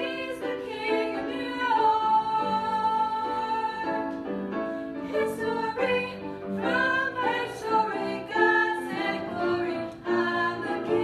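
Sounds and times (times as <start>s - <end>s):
group of voices singing: 0.0s - 4.0s, 5.1s - 11.0s.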